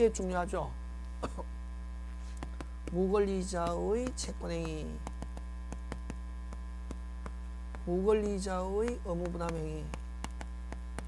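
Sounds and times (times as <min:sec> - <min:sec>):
person speaking: 0:00.0 - 0:01.5, 0:02.3 - 0:11.0
electrical mains hum: 0:00.0 - 0:11.0
chalk tapping on chalkboard: 0:02.3 - 0:11.0.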